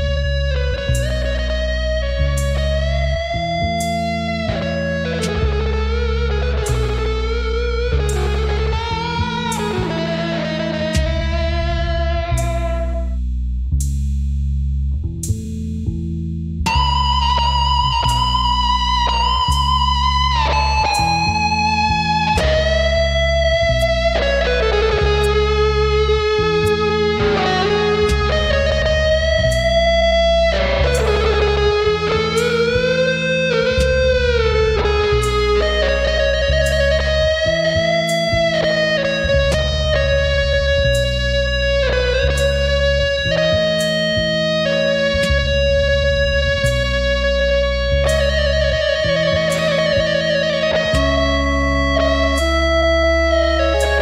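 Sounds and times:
lead guitar melody with bends: 0.0 - 13.2, 16.6 - 54.0
bass line: 0.0 - 54.0.

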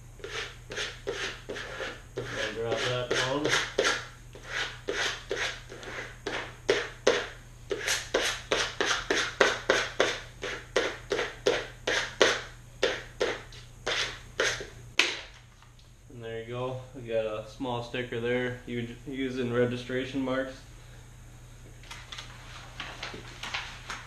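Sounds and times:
squeegee scraping over vinyl: 0.2 - 12.3.

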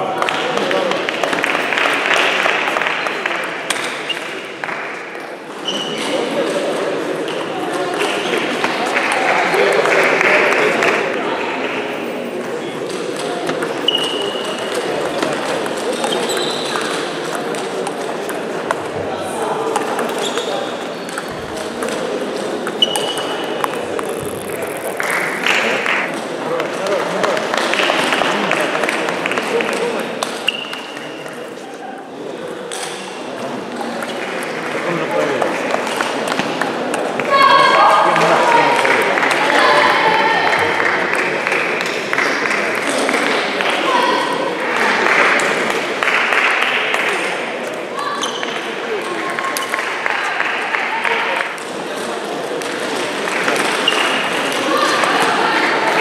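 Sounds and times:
table tennis balls clicking: 21.0 - 26.1.

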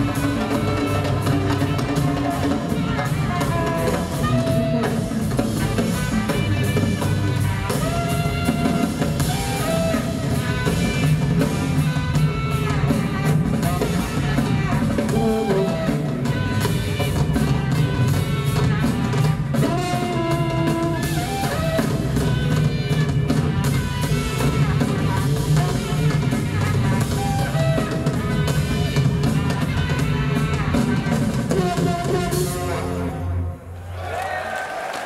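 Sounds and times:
tuba bass line: 0.0 - 33.6
tenor saxophone melody: 0.0 - 33.7
drum kits: 0.0 - 35.0.

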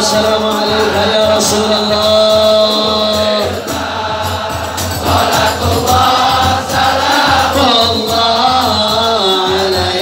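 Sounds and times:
men singing together: 0.0 - 10.0.

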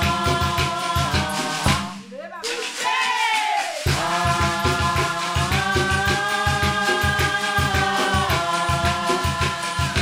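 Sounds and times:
drums: 0.0 - 10.0
shaker rattle: 0.0 - 10.0.

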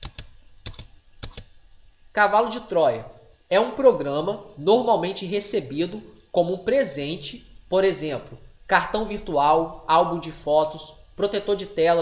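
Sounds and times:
computer mouse clicks: 0.0 - 1.5.

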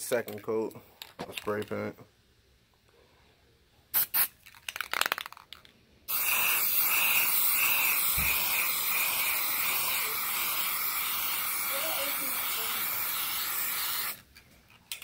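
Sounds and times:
spray can rattle: 3.9 - 15.0
hiss of paint spraying: 6.1 - 14.2.

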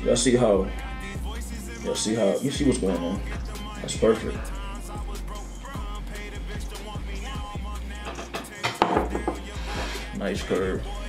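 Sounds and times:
hip-hop music: 0.0 - 11.0
handling knocks and rubbing: 8.1 - 9.9.

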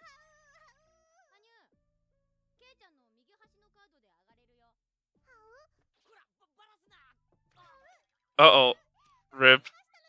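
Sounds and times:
high-pitched cartoon voices talking: 9.4 - 9.6.

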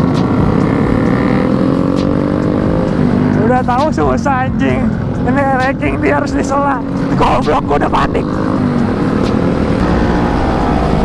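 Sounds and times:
two-stroke motorcycle engine running: 0.0 - 9.9.

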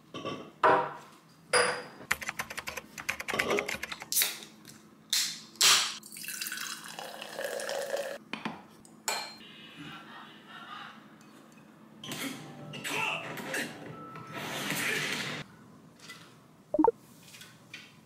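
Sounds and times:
glassware clinking on countertop: 1.6 - 2.0
drink poured into glass: 6.1 - 8.2.

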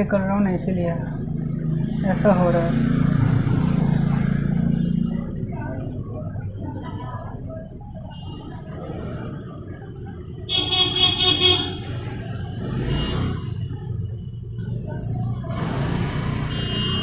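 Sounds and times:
street traffic rumbling: 0.0 - 17.0
vehicle horn honking: 10.5 - 11.9, 12.8 - 13.5, 16.4 - 17.0.

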